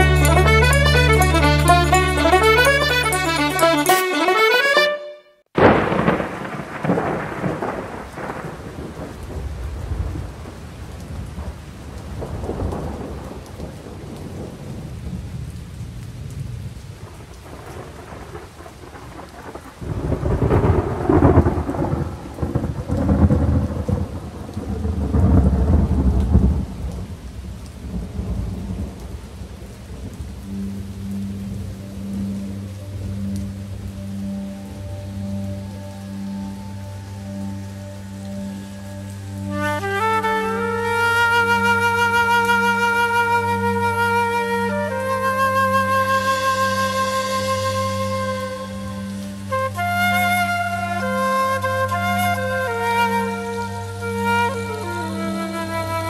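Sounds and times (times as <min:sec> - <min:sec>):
low pulsing musical note: 0:00.0 - 0:04.7, 0:30.5 - 0:56.0
rain: 0:00.0 - 0:04.7, 0:05.4 - 0:56.0
rolling thunder: 0:05.6 - 0:32.1.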